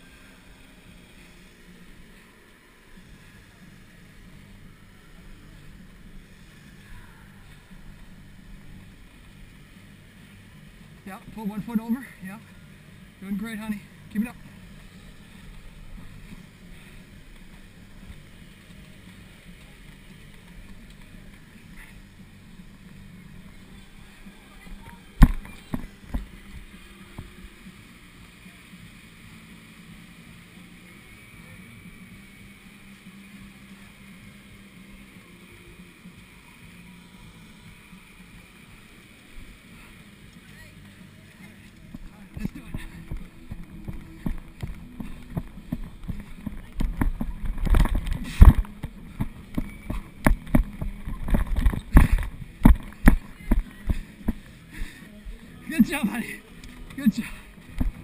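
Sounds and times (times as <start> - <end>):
wind rumble on camera: 41.9 - 54.4.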